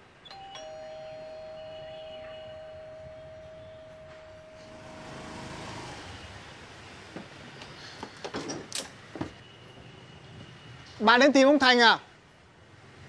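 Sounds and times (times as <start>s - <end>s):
two-note doorbell chime: 0.3s - 5.0s
motorbike engine approaching: 3.2s - 6.5s.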